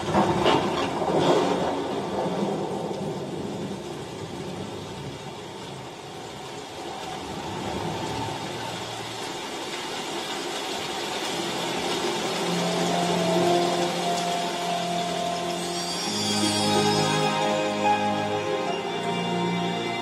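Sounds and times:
sustained musical notes: 11.5s - 20.0s.

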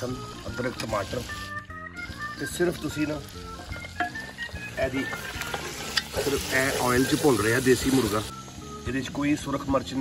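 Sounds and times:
frying sizzle: 0.0s - 10.0s.

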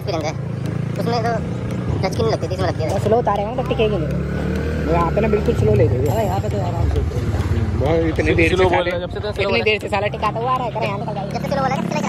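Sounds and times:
motorcycle engine running: 0.0s - 12.0s
man talking: 6.9s - 10.4s.

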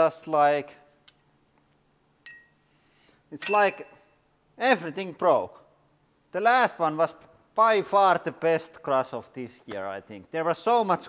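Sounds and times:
metal fragments clinking: 2.2s - 2.6s, 3.4s - 4.0s.

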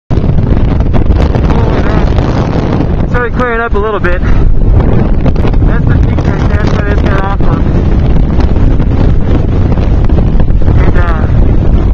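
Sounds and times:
wind blowing across microphone: 0.1s - 11.9s.

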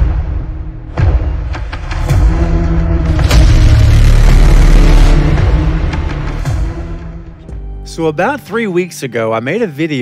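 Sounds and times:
cinematic boom and deep rumble: 2.3s - 7.0s.

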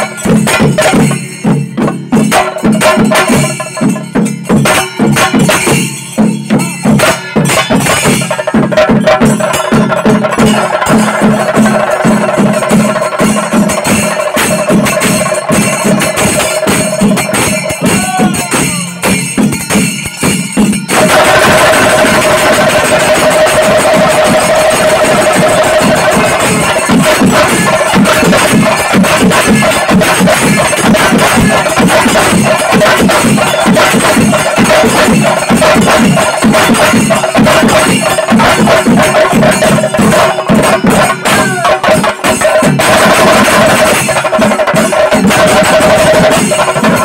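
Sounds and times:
cymbals clashing: 0.0s - 47.0s
fast drumming: 0.0s - 47.0s.

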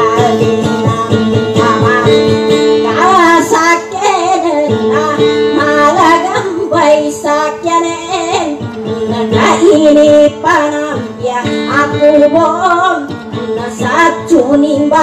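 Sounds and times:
plucked acoustic guitar: 0.0s - 15.0s
woman singing: 0.0s - 15.0s.

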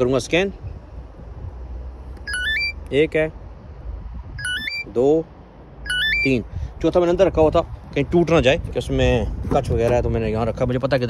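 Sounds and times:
rising electronic chime: 4.4s - 4.8s.

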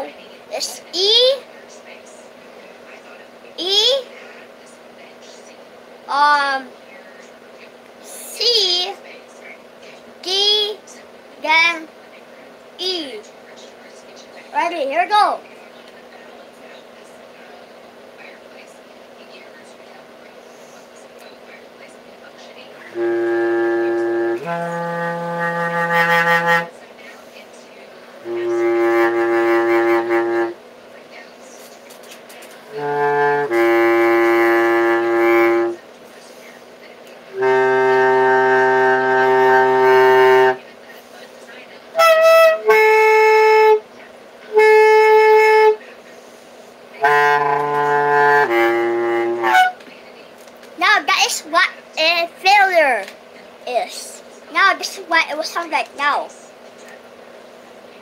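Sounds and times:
bass clarinet playing held notes: 22.9s - 26.7s, 28.2s - 30.6s, 32.7s - 35.8s, 37.3s - 40.6s, 42.0s - 43.8s, 44.5s - 45.8s, 47.0s - 49.8s.

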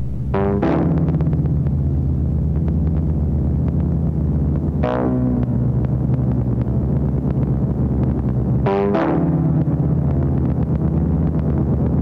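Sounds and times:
bright synth chord: 0.0s - 1.4s
low synth drone: 0.0s - 12.0s.

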